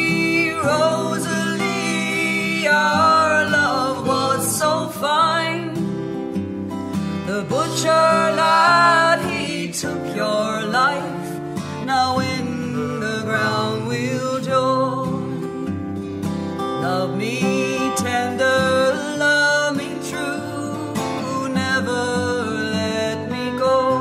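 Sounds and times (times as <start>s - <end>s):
woman singing: 0.0s - 6.0s, 7.0s - 15.9s, 16.8s - 24.0s
acoustic guitar: 0.0s - 24.0s.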